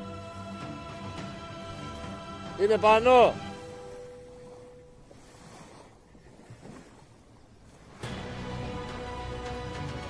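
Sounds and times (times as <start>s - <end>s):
small waves on pebble shore: 3.5s - 8.3s.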